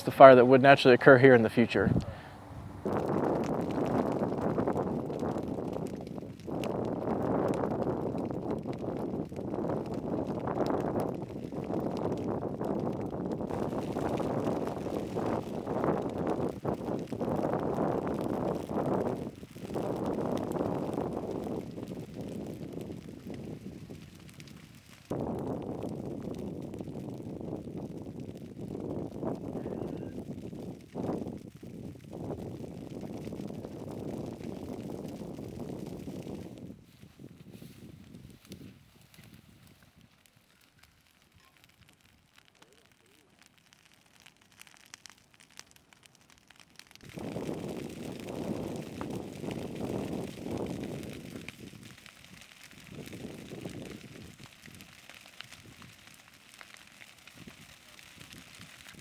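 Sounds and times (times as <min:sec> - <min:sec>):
dry grass fire crackling: 0:00.0 - 0:59.0
fire rushing: 0:00.0 - 0:59.0.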